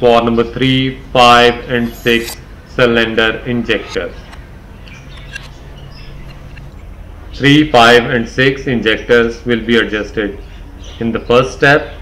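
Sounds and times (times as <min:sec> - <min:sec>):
steady low hum: 0:00.9 - 0:09.1.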